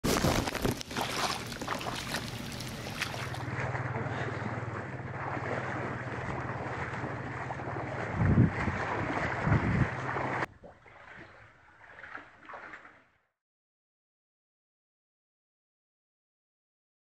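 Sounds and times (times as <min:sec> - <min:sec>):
water sloshing from wading: 0:00.0 - 0:13.2
steady low hum: 0:00.2 - 0:10.5
wind on microphone: 0:07.7 - 0:10.5.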